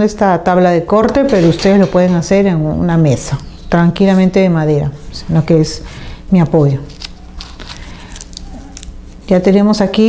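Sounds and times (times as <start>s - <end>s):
tissue paper crinkling: 6.5s - 9.6s.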